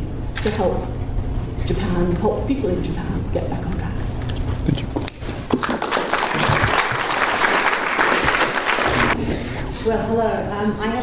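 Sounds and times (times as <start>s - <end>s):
audience applauding: 5.5s - 9.2s.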